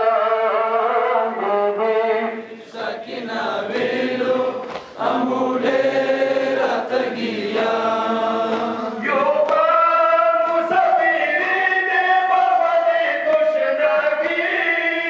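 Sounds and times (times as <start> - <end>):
men chanting a lament: 0.0 - 15.0.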